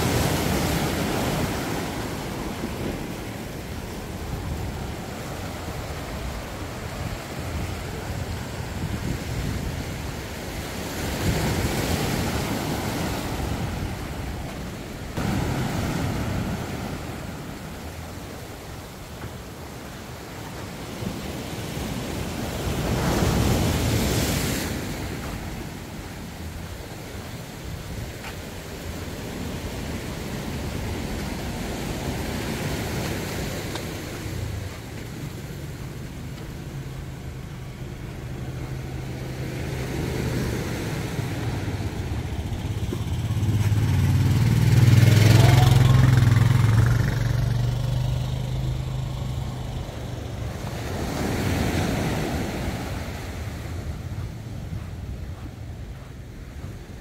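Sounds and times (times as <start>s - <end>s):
surf washing onto beach: 0.0s - 57.0s
passing engine hum: 30.9s - 57.0s.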